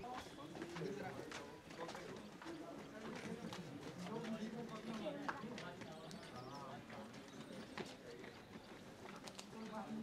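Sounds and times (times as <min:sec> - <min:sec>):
people talking faintly: 0:00.0 - 0:10.0.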